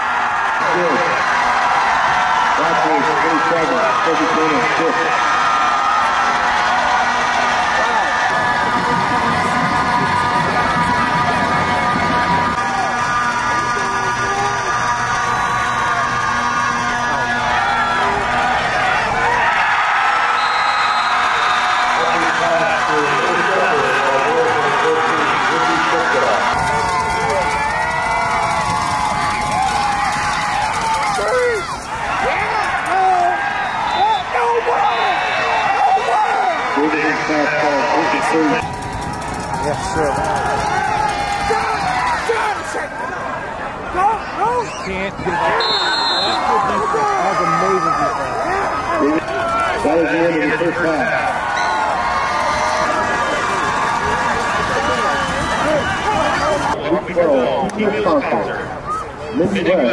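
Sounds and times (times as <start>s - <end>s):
crowd yelling and cheering: 0.0s - 59.9s.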